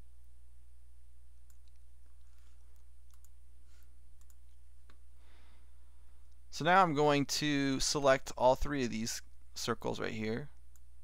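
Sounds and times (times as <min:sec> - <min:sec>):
low electrical hum: 0:00.0 - 0:11.0
computer mouse clicks: 0:01.5 - 0:05.0.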